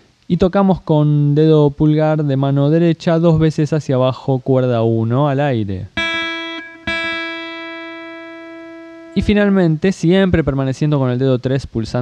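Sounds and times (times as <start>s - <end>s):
acoustic guitar string ringing: 6.0s - 9.4s.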